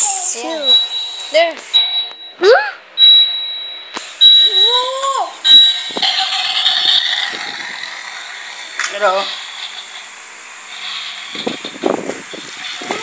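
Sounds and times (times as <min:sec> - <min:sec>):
toy high steady beep: 0:00.4 - 0:07.0.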